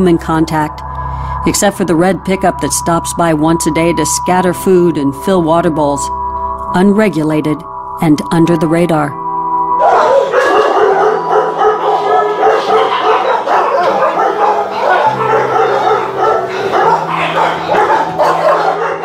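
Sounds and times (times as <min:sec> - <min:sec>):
background music with low held notes: 0:00.0 - 0:19.0
many dogs barking: 0:09.8 - 0:19.0.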